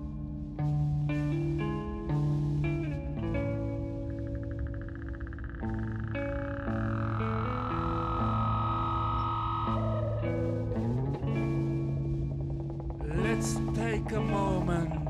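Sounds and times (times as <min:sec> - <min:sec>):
synthesizer chords: 0:00.0 - 0:15.0
pulsing croak-like high tone: 0:03.0 - 0:15.0
gliding tone: 0:03.6 - 0:15.0.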